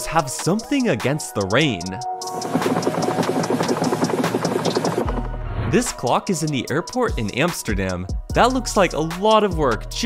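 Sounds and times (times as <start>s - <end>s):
windshield wipers running fast: 2.2s - 5.2s.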